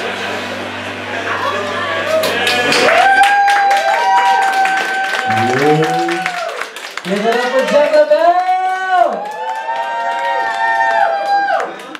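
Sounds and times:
audience clapping: 2.2 - 11.9
person whooping: 2.8 - 6.6.

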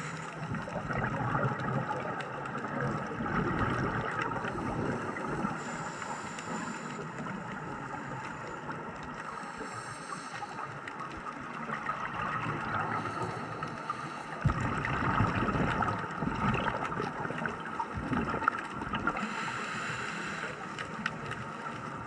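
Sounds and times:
muffled underwater noise: 0.0 - 22.0.

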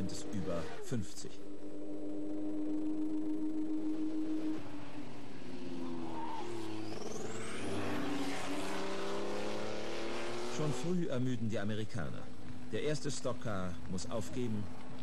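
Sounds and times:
racing car engines at high revs: 0.0 - 11.2
thin rising whine: 0.1 - 10.4.

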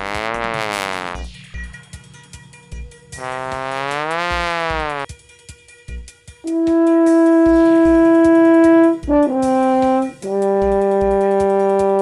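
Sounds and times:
trombone low note: 0.0 - 1.3, 3.2 - 5.0, 6.5 - 12.0
soft background beat: 6.4 - 12.0.

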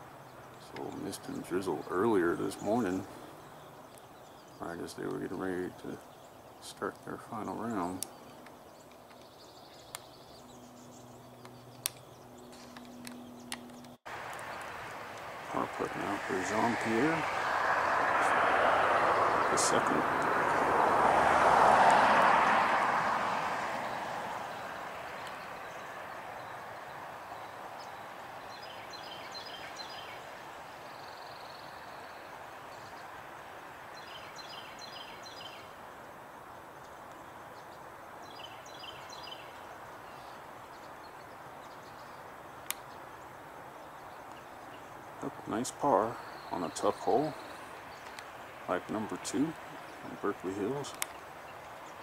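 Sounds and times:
steady low hiss: 0.0 - 52.0.

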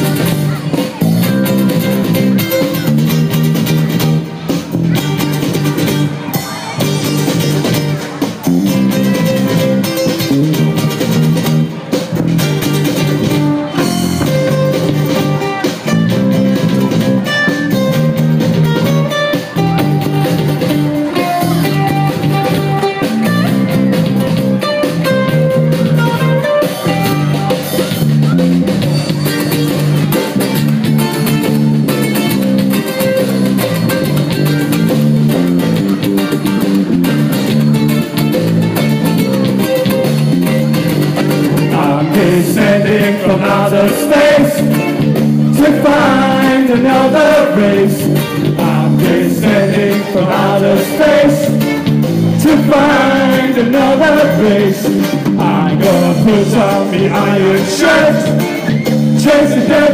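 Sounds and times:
ukulele band playing: 0.0 - 59.9.

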